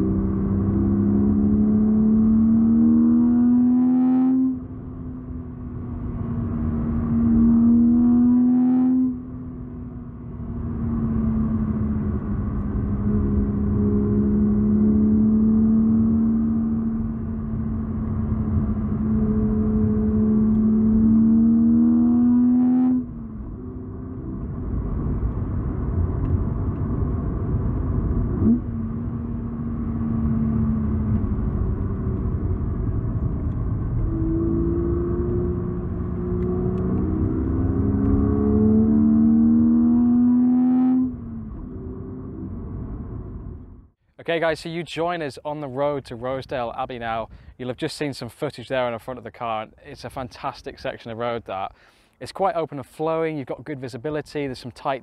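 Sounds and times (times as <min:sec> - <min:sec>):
car engine revving: 0:00.0 - 0:43.8
road and wind rumble: 0:00.0 - 0:55.0.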